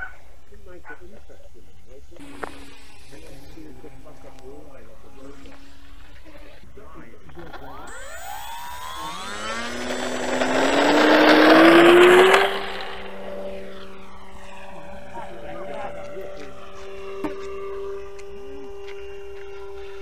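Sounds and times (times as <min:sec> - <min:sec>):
steady low tones: 0:02.0 - 0:19.8
model plane motor whine: 0:02.0 - 0:20.0.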